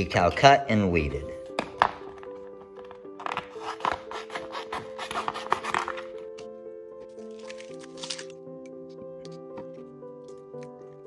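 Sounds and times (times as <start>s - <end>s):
background music: 0.0s - 11.0s
vinyl sheet rustling: 1.7s - 6.4s.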